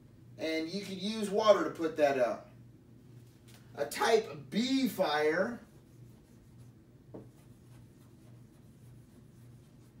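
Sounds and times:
low steady hum: 0.0 - 10.0
marker scratching on paper: 5.6 - 10.0.

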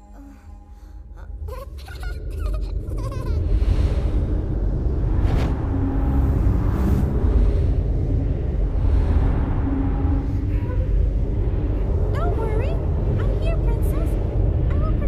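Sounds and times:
low rumble: 0.0 - 15.0.

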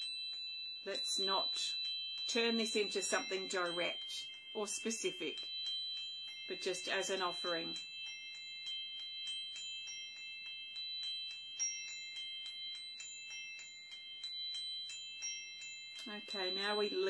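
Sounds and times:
singing bowl ringing: 0.0 - 17.0.

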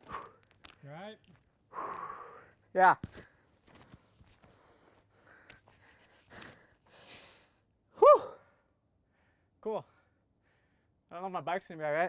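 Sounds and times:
man breathing out and sighing: 1.7 - 2.6
man shouting woo: 8.0 - 8.4.

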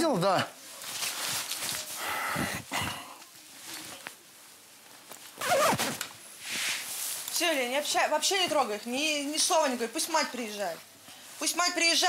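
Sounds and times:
clothing rustling: 0.6 - 2.0, 3.3 - 9.3.

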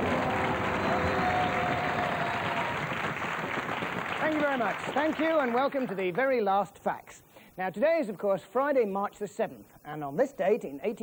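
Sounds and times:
studio audience applauding: 0.0 - 6.2.

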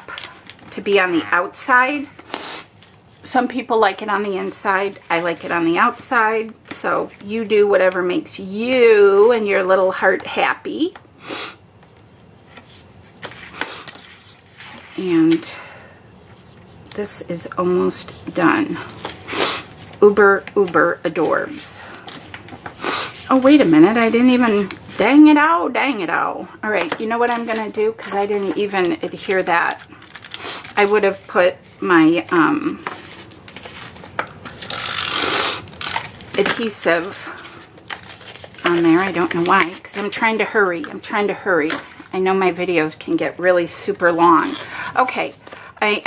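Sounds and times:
paper rustling: 26.8 - 40.8
tape runner scratchy rolling: 33.5 - 40.1.

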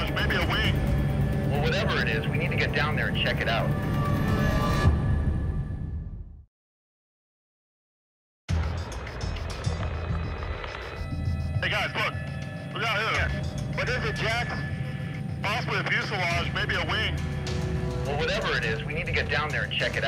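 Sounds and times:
indistinct voices: 0.0 - 3.8, 9.3 - 20.0
background music: 0.0 - 6.2, 8.5 - 20.0.

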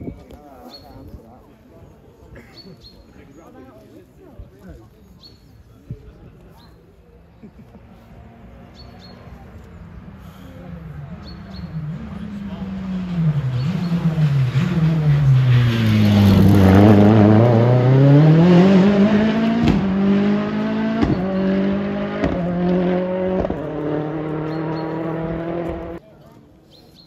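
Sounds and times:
rally car engine passing: 7.8 - 26.0.

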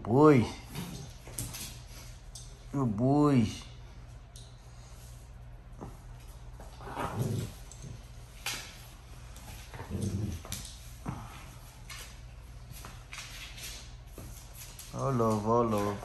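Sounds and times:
clicks and scuffs on tile floor: 0.7 - 2.7, 4.0 - 16.0.

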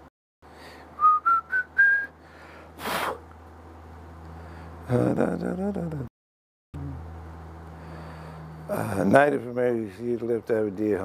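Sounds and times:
man whistling rising notes: 1.0 - 2.2
puff of noise: 2.8 - 3.2.

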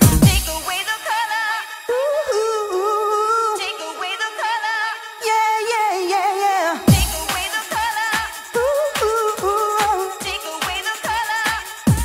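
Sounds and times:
deep booming hit: 0.0 - 0.6
dance track with vocals: 0.0 - 12.0.

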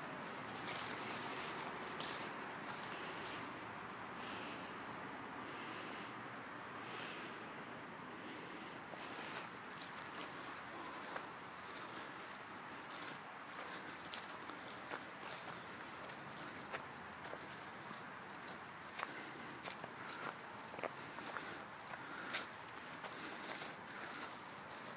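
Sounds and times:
insect chorus: 0.0 - 24.9
footsteps through leaf litter: 0.5 - 3.5.

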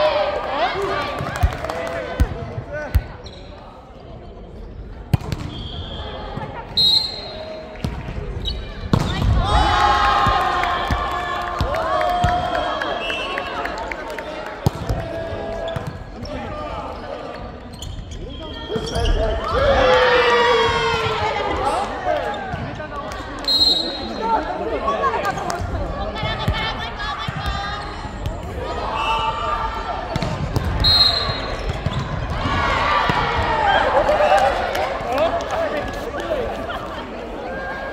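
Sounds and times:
people talking and calling out: 12.4 - 37.9.

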